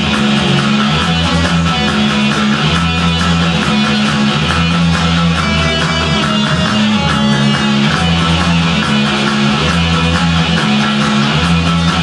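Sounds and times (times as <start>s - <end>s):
guitar-led rock music: 0.0s - 12.0s
held bass line: 0.0s - 12.0s.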